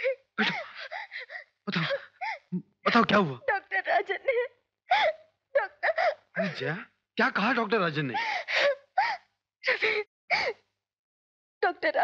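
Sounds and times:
woman wailing and sobbing: 0.0 - 6.6.

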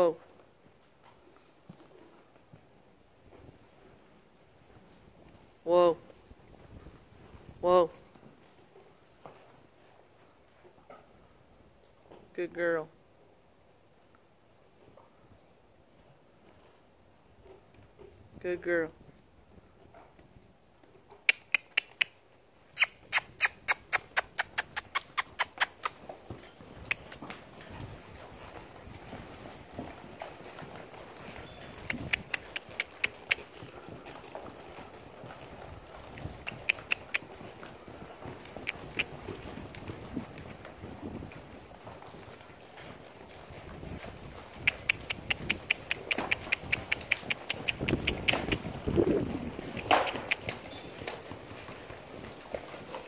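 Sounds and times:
soft hoofbeats: 15.9 - 53.0
mouth kissing clicks: 21.2 - 22.2, 22.8 - 26.0, 26.8 - 27.2, 31.8 - 33.5, 36.4 - 37.2, 44.7 - 48.6, 49.7 - 50.6.

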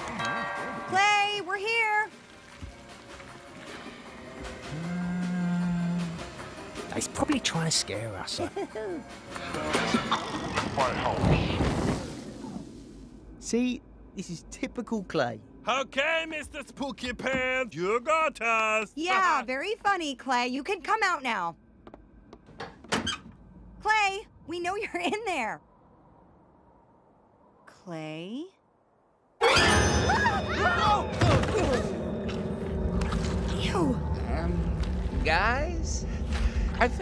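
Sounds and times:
low long scare tone: 30.3 - 37.0.

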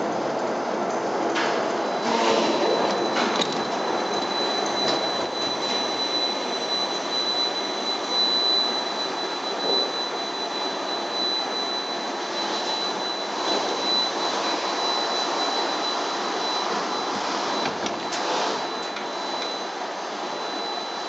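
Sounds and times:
lift mechanical running noise: 0.0 - 21.0
thin high whine: 1.9 - 21.0.

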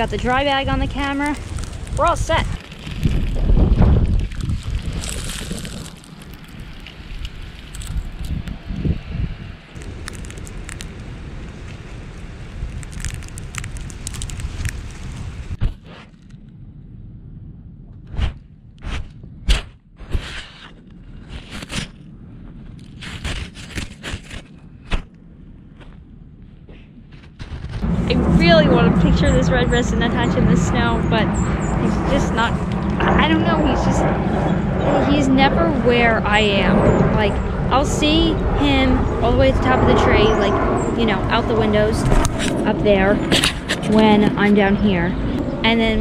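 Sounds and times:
wind on microphone: 0.0 - 46.0.

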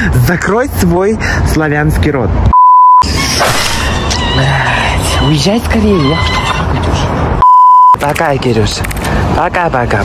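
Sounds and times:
censor bleep tone: 2.5 - 3.0, 7.4 - 8.0.

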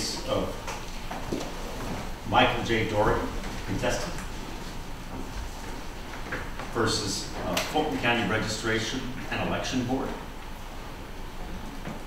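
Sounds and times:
man speaking: 0.0 - 0.6, 2.3 - 4.3, 6.8 - 10.2.

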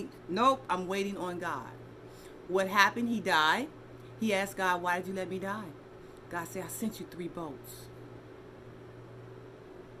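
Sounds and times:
faint background hiss: 0.0 - 10.0
low steady hum: 0.0 - 10.0.

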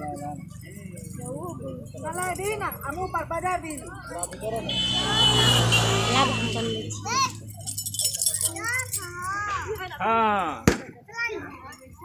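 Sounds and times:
vehicle engine running: 0.2 - 8.0
women's voices: 5.9 - 7.0.

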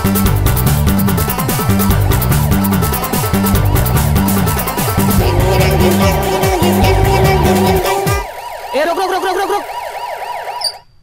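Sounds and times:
music with pounding drum beat: 0.0 - 8.3
warbling siren-like sound effect: 5.2 - 10.8.

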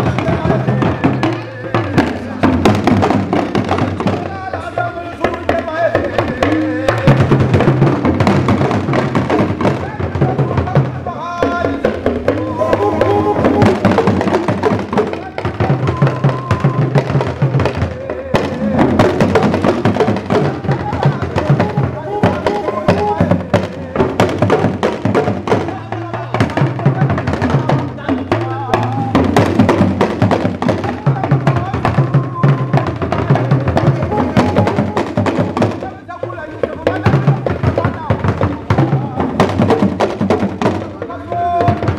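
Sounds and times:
talking drums struck with sticks: 0.0 - 41.9
bass drum: 5.5 - 36.0.

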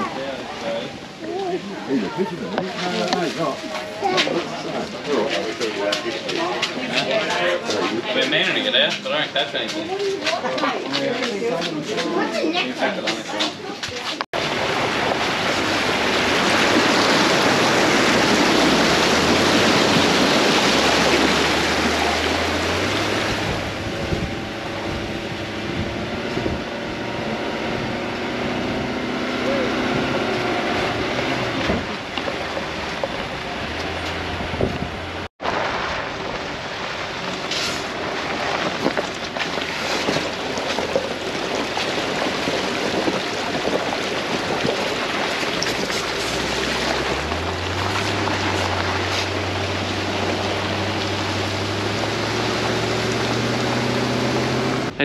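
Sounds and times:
water rushing and splashing: 0.0 - 55.0
car engine revving: 14.4 - 55.0
wind noise on microphone: 15.0 - 32.1, 32.8 - 35.3.

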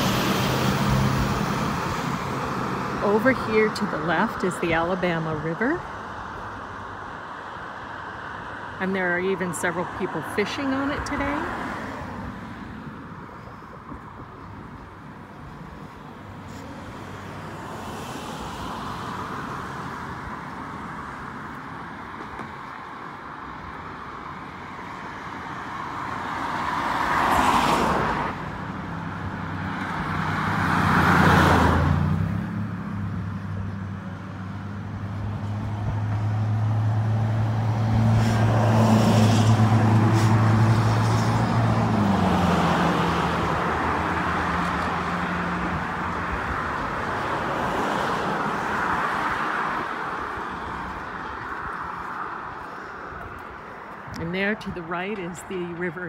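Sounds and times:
cars rushing by: 0.0 - 56.0
road noise: 0.0 - 56.0.

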